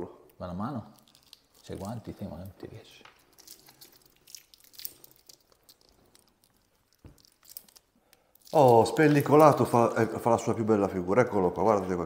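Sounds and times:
plastic film crinkling: 0:00.4 - 0:10.7.

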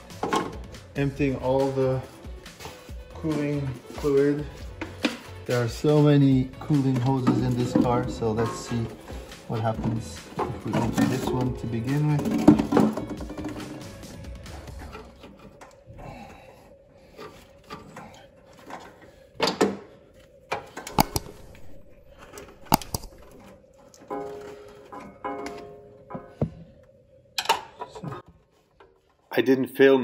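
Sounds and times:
background music: 0:00.0 - 0:16.4, 0:20.9 - 0:26.6
hand tools clicking and knocking: 0:04.6 - 0:15.8, 0:20.5 - 0:26.5.

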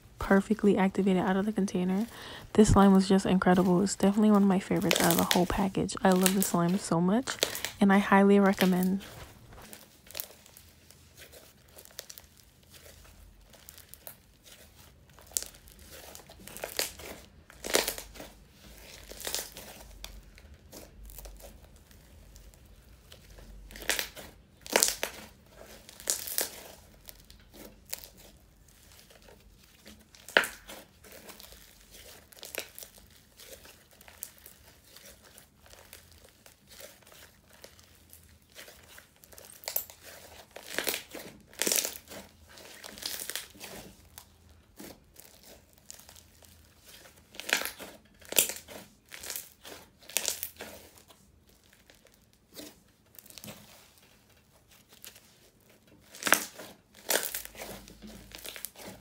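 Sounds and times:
slime crackling and popping: 0:00.0 - 0:59.0.

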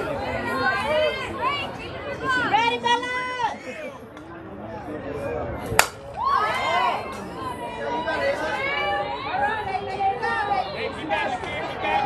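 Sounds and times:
sharp crack of ball: 0:05.7 - 0:06.1.

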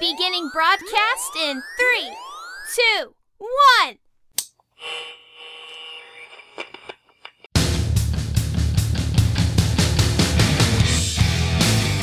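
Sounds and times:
electronic buzzing tone with static: 0:04.8 - 0:07.5.

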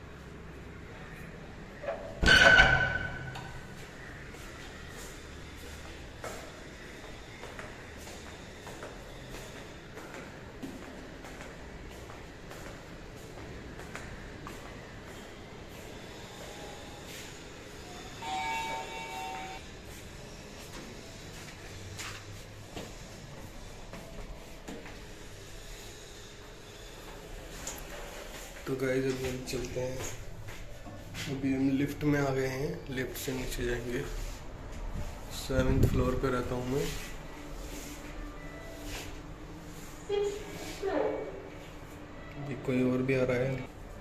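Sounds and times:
footsteps on tiled floor: 0:03.6 - 0:17.4, 0:19.8 - 0:31.9
lift electronic chime: 0:18.2 - 0:19.6.

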